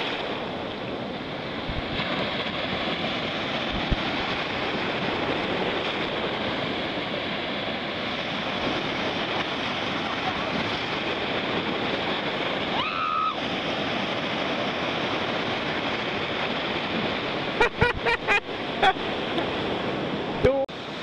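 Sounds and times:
ocean surf breaking: 0.0s - 21.0s.

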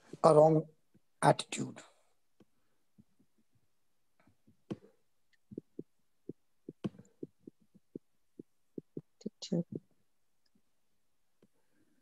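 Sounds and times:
choppy voice over video call: 0.0s - 2.1s, 4.7s - 10.0s.

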